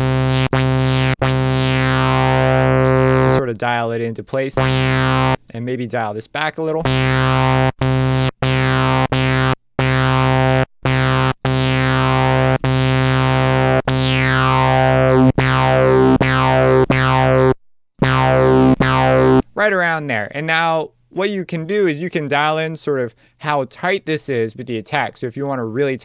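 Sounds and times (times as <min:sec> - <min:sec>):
synth bass note with filter sweep: 0:00.0 - 0:03.4, 0:04.6 - 0:05.4, 0:06.8 - 0:19.4.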